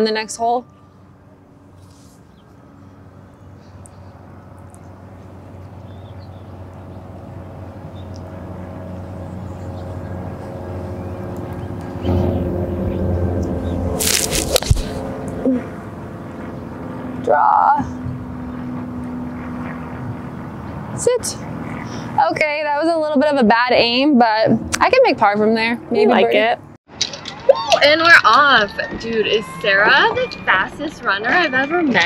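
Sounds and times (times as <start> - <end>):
propeller airplane droning: 0.0 - 32.0.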